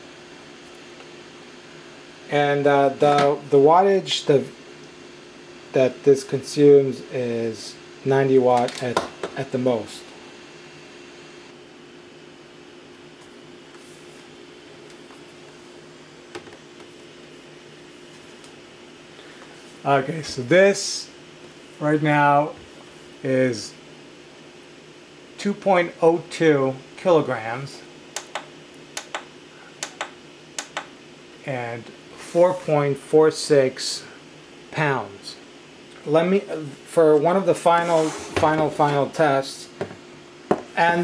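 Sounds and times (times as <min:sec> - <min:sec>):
faint steady hum: 0:00.0 - 0:41.0
laptop fans whirring: 0:00.0 - 0:41.0.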